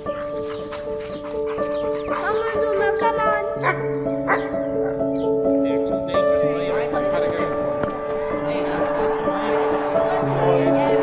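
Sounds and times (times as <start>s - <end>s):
slow gentle piano music: 0.0s - 11.0s.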